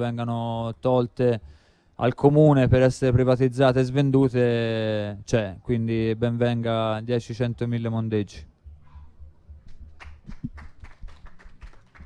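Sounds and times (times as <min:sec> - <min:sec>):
audience hand clapping: 0:09.7 - 0:12.0.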